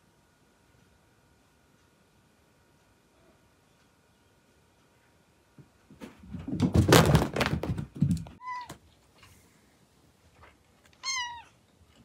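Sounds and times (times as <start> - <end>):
cat scrambling across carpet: 5.9 - 8.4
cat meow: 8.4 - 8.8, 11.0 - 11.6
cat chirp: 11.0 - 11.6.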